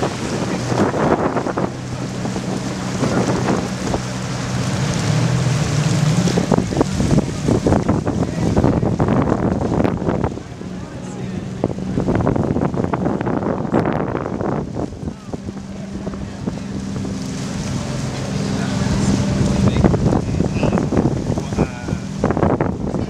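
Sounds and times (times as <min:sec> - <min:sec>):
low engine hum: 0:00.0 - 0:23.0
waves washing against rocks: 0:00.0 - 0:23.0
wind buffeting microphone: 0:00.0 - 0:23.0.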